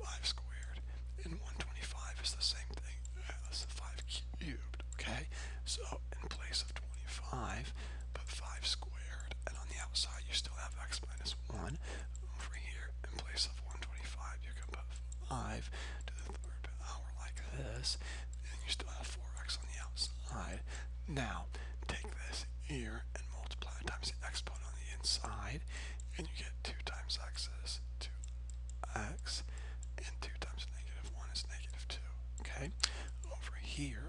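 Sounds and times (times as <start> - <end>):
low electrical hum: 0.0 - 34.0.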